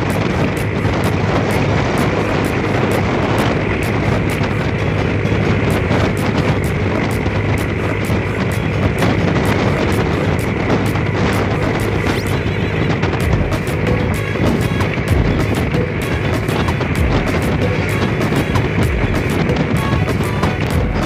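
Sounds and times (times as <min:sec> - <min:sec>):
low hum: 0:00.0 - 0:21.0
vehicle engine road and wind noise: 0:00.0 - 0:21.0.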